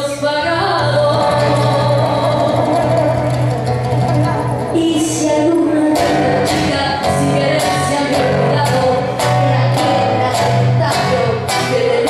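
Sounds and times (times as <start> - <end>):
classical guitar: 0.0 - 12.0.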